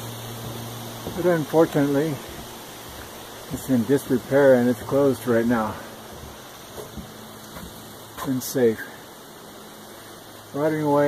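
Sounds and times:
outdoor hiss: 0.0 - 11.0
faint soft knocks: 6.2 - 8.4.

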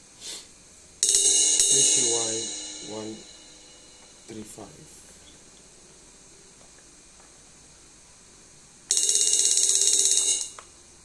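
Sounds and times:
electronic cymbal crash: 1.0 - 4.7.

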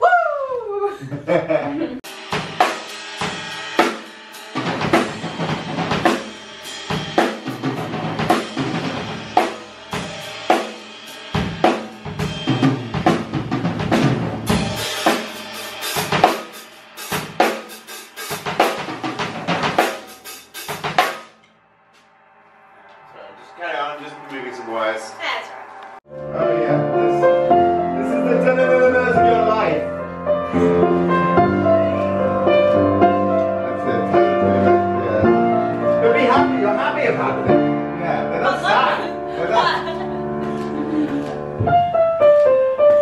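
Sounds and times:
bass drum: 2.0 - 16.4, 18.3 - 21.4
cymbals: 2.0 - 40.0
snare drum: 10.5 - 21.4.

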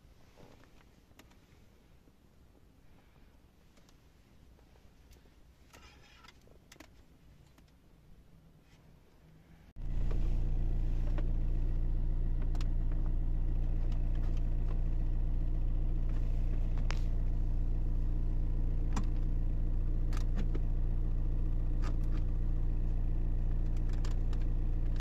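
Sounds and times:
car engine idling: 9.4 - 25.0.

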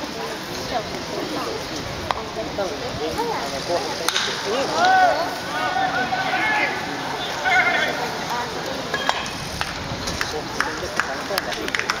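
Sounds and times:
ballplayers shouting: 4.2 - 8.6.

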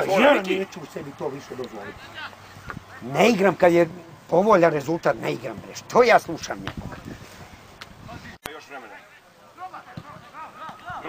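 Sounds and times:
quiet voices talking: 0.0 - 7.2.

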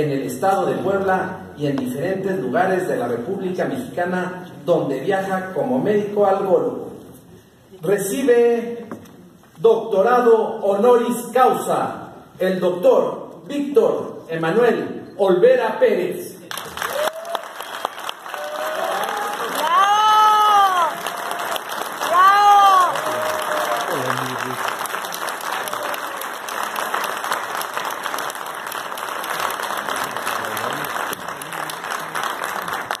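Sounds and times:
audience applauding: 16.5 - 33.0.

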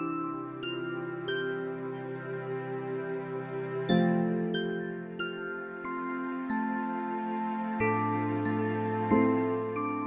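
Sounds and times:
calm piano music: 3.7 - 10.0.

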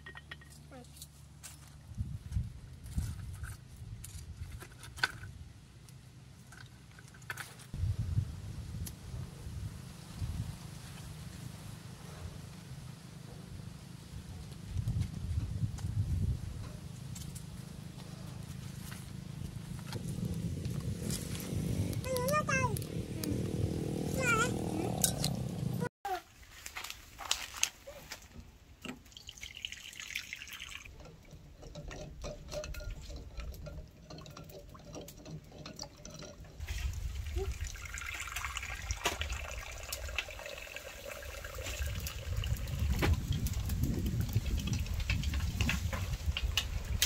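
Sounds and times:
water running: 29.0 - 43.7.

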